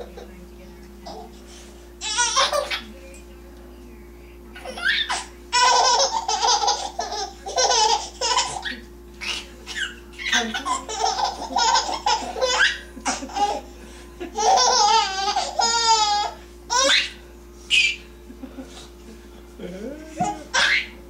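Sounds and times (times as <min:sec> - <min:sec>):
baby laughing: 0:02.0 - 0:02.9, 0:04.6 - 0:13.7, 0:14.3 - 0:18.0, 0:20.2 - 0:21.0.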